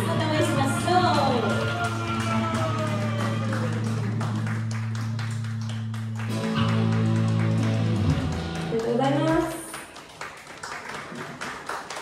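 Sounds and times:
strummed guitar: 6.2 - 9.0.

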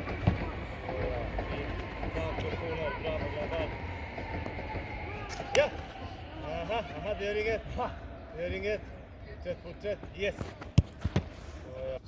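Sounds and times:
football thuds: 0.0 - 0.6, 10.0 - 11.5.

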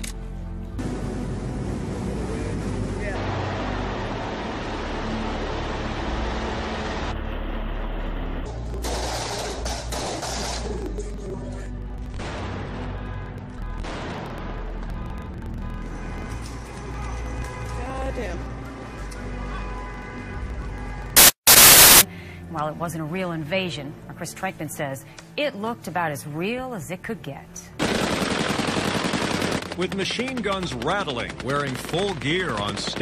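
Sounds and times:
rapid gunshots and bangs: 8.8 - 10.7, 27.8 - 33.0
white-noise static burst: 21.2 - 22.0.

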